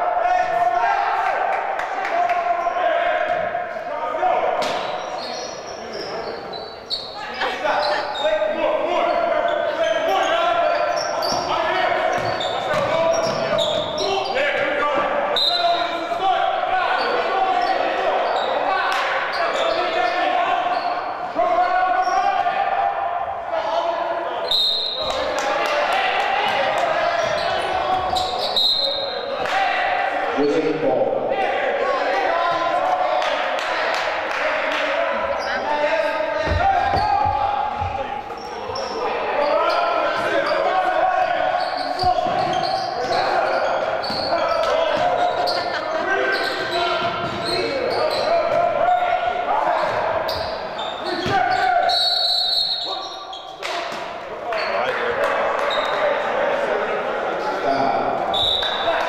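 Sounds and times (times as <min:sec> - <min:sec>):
players calling out: 0:00.0 - 0:59.0
sneakers squeaking: 0:04.6 - 0:16.2, 0:16.9 - 0:22.5, 0:24.4 - 0:25.7, 0:26.3 - 0:29.4, 0:35.2 - 0:56.2.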